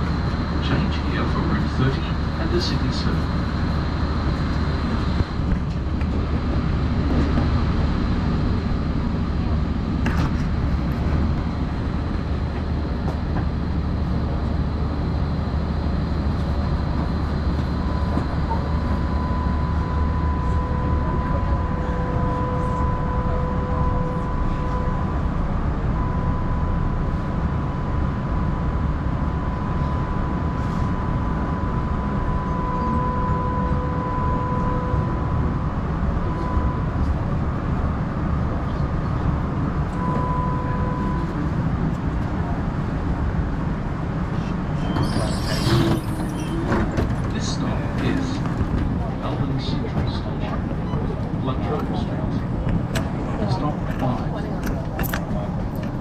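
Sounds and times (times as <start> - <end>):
tram rumbling: 0.0 - 56.0.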